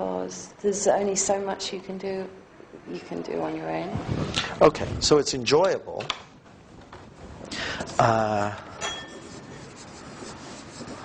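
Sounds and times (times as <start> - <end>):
marker pen writing on paper: 9.1 - 11.0.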